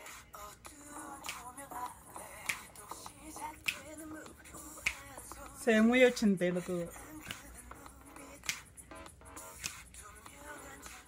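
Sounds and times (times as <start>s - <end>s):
faint music: 0.0s - 11.0s
finger snaps: 1.2s - 1.7s, 2.4s - 4.1s, 4.7s - 5.2s, 7.2s - 7.5s, 8.3s - 8.7s, 9.5s - 10.0s.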